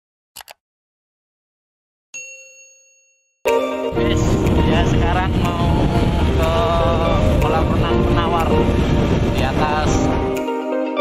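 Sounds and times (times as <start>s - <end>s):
bell ding notification: 2.2s - 4.9s
loud steady tones: 3.9s - 9.3s.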